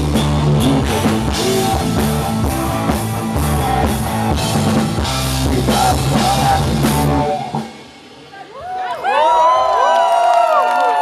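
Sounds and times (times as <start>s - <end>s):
rock band playing live: 0.0s - 8.6s.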